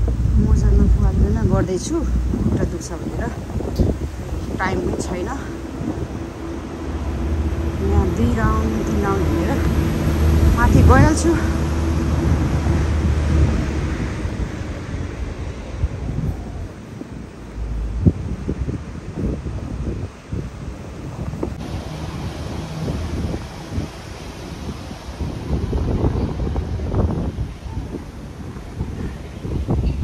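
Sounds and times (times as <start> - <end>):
wind buffeting microphone: 0.0 - 30.0.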